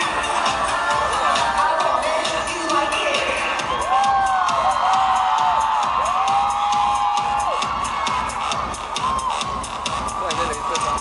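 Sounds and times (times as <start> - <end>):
live pop music: 0.0 - 11.0
crowd cheering: 3.3 - 11.0.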